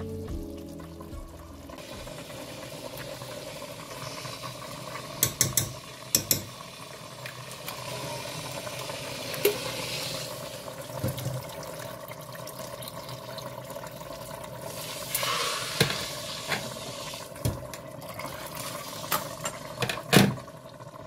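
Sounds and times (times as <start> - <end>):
food sizzling on a hob: 0.0 - 21.0.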